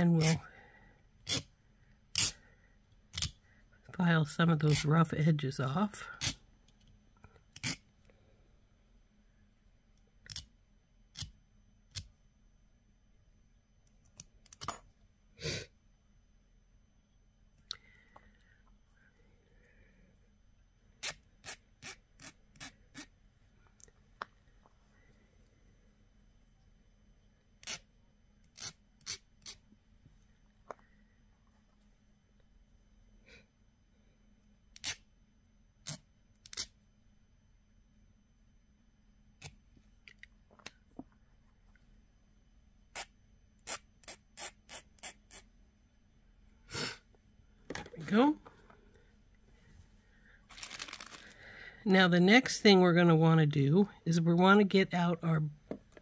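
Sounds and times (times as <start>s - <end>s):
faint hiss: 46.2s - 52.2s.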